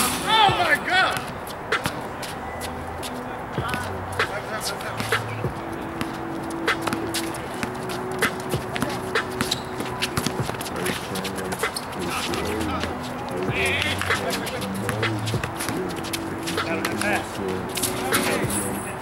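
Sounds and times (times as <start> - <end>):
players calling out: 0.0 - 19.0
sneakers scuffing on concrete: 0.5 - 18.6
basketball bouncing on concrete: 3.6 - 17.2.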